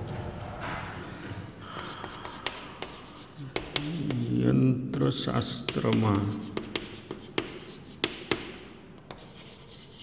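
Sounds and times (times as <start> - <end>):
chalk tapping on board: 1.7 - 4.3, 5.6 - 10.0
chalk scratching on blackboard: 1.7 - 4.4, 5.7 - 10.0.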